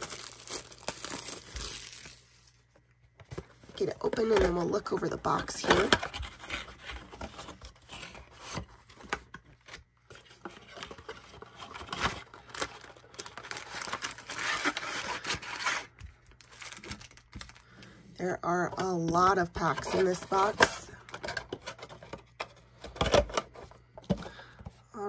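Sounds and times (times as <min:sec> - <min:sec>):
cardboard tearing and scraping: 0:00.0 - 0:02.3, 0:05.6 - 0:09.2, 0:10.2 - 0:17.2
foil packs rustling: 0:00.0 - 0:02.6, 0:10.6 - 0:18.0.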